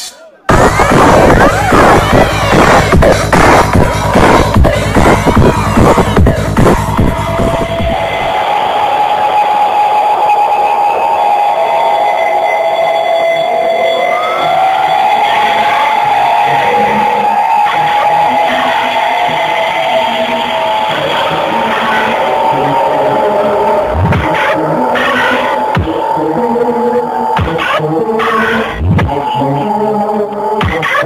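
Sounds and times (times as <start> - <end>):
psytrance over sound system: 0.0 - 31.0
sustained synth tones: 10.6 - 31.0.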